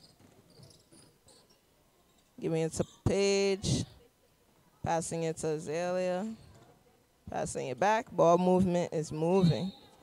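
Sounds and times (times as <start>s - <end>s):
sneakers squeaking on hardwood: 0.0s - 1.6s.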